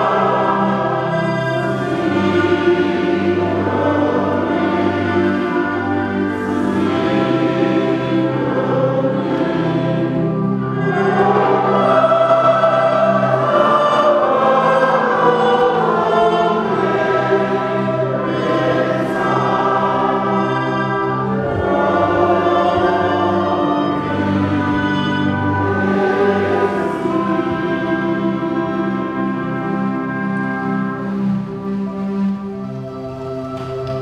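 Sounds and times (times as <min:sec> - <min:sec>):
congregation singing a hymn: 0:00.0 - 0:34.0
steady low drone: 0:00.0 - 0:34.0.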